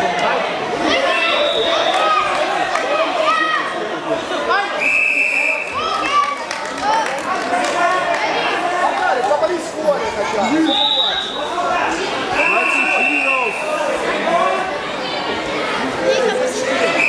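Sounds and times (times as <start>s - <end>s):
people talking and calling out: 0.0s - 17.0s
referee whistle blasts: 4.8s - 5.8s, 10.7s - 11.4s, 12.4s - 13.7s.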